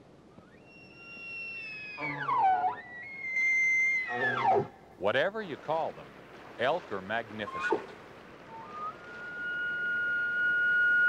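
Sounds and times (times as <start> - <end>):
elk bugling: 0.4 - 11.0.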